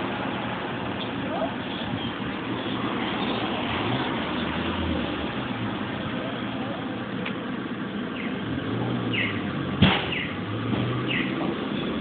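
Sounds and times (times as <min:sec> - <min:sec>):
street traffic: 0:00.0 - 0:12.0
vehicle engine hum: 0:00.0 - 0:12.0.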